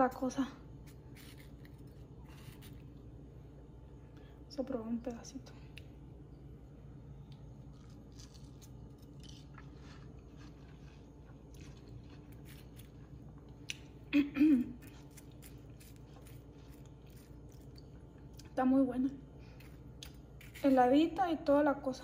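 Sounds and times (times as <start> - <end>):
low room hum: 0.0 - 22.0
person chewing watermelon: 0.8 - 3.0, 7.2 - 14.0, 14.8 - 18.6.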